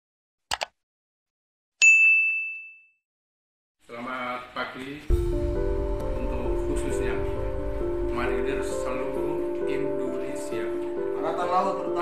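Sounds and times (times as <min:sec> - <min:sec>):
notification bell ding: 0:01.8 - 0:03.0.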